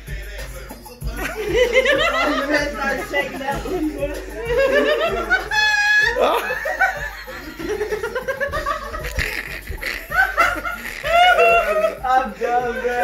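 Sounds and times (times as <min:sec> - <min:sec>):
group of people laughing: 0:01.2 - 0:13.0.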